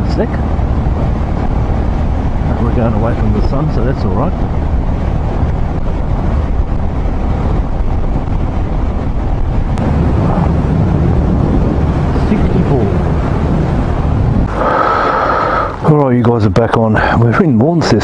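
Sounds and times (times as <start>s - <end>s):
motorcycle engine and tyre noise: 0.0s - 16.0s
wind rush on microphone: 0.0s - 18.0s.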